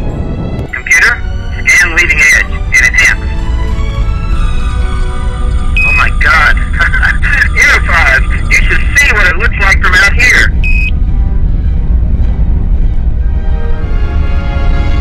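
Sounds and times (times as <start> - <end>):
low rumble: 0.0 - 15.0
music: 0.0 - 15.0
short steady beeps: 5.8 - 6.2, 10.6 - 10.9
warbling electronic chirps: 10.6 - 10.9.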